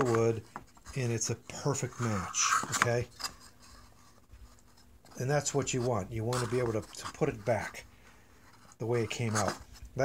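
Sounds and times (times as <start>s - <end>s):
wood rubbing on wood: 0.0s - 10.0s.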